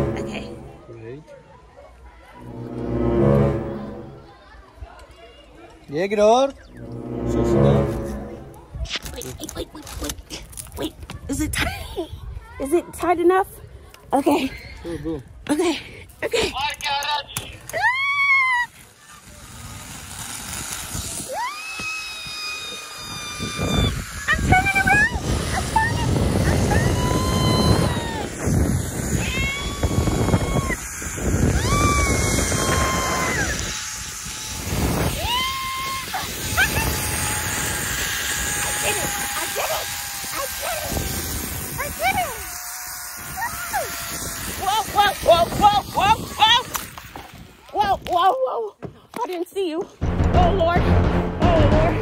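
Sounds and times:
long high steady tone: 0.0 - 0.9, 6.7 - 8.7
zipline pulleys running on cable: 8.5 - 13.0, 17.6 - 48.5
person whooping and laughing: 17.7 - 18.8, 21.3 - 24.0, 26.4 - 28.4, 31.6 - 33.6, 35.1 - 37.5
wind rushing over microphone: 23.0 - 42.5, 43.2 - 48.1.

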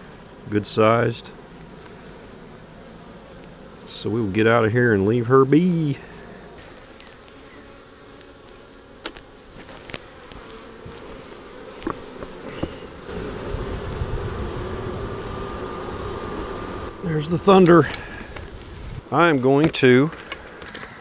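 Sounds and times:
honey bees buzzing: 0.0 - 21.0
knocks on wooden hive boxes: 9.0 - 13.5.

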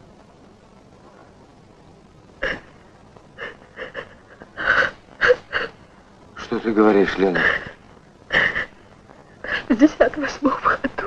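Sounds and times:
woman gasping and sobbing: 3.4 - 5.8, 7.4 - 9.8.

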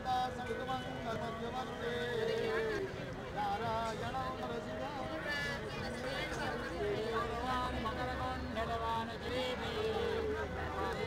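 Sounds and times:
people talking at once: 0.1 - 11.0.

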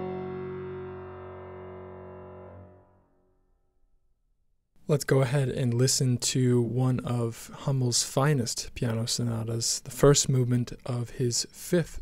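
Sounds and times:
piano chord ringing: 0.0 - 3.5.

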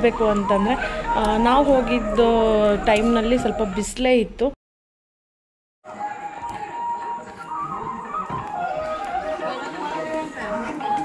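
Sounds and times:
crowd chattering: 5.9 - 11.0
music playing: 5.9 - 11.0.

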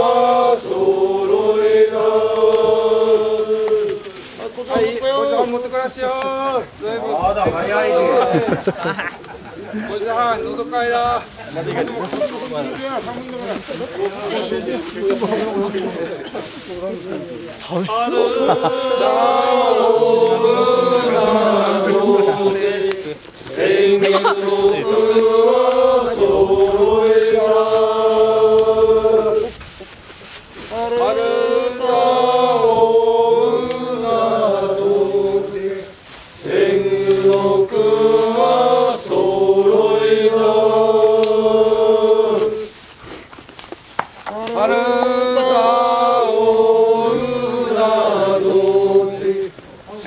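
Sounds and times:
voices chanting: 0.0 - 42.9, 44.3 - 50.0.

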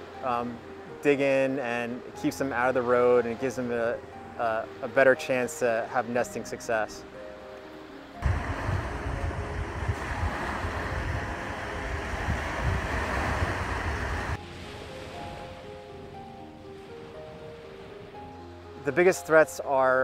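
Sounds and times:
soft background music: 0.0 - 20.0
loud outdoor rushing noise: 8.2 - 14.4.

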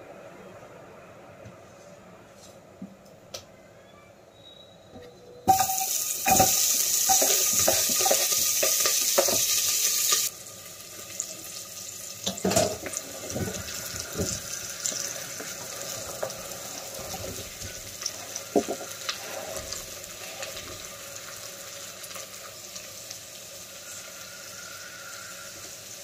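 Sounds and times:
vegetables sizzling in hot oil: 5.5 - 26.0.

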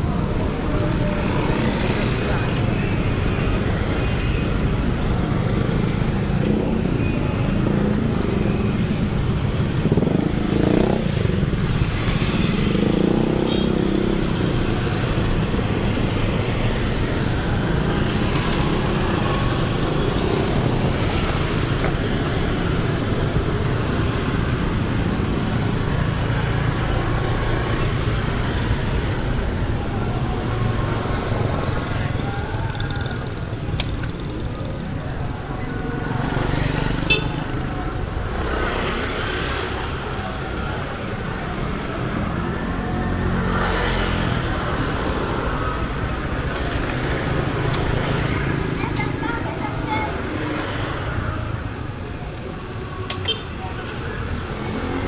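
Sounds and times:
motorcycle and car engines passing: 0.0 - 53.0.

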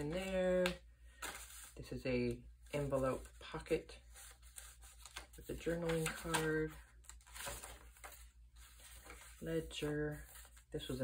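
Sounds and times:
paper page turning: 0.0 - 1.9, 4.1 - 11.0.

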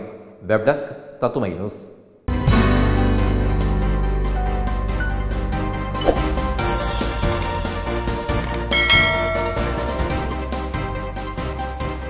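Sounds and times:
background music: 2.3 - 12.0
bell chime: 8.6 - 10.5.

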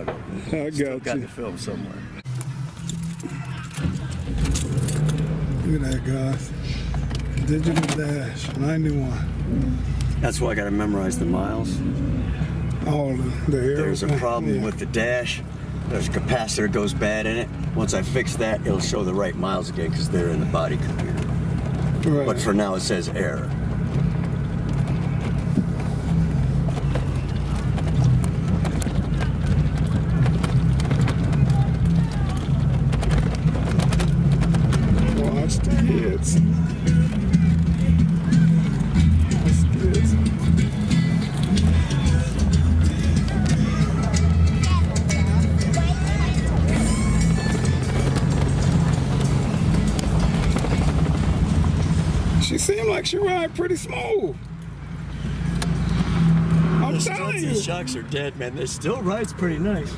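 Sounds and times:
car engine drone: 0.0 - 59.9
tyres on road: 0.0 - 59.9.

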